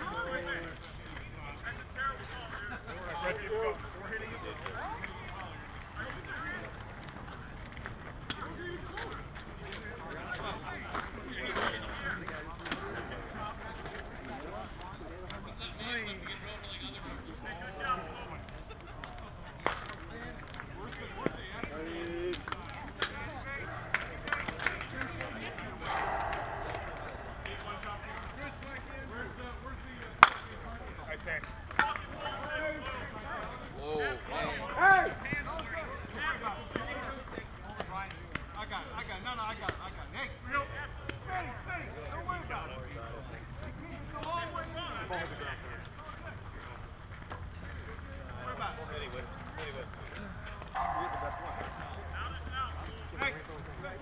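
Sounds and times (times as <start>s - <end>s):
distant players calling out: 23.4s - 29.1s, 50.2s - 53.2s
bat striking ball: 25.8s - 28.7s, 50.8s - 52.2s.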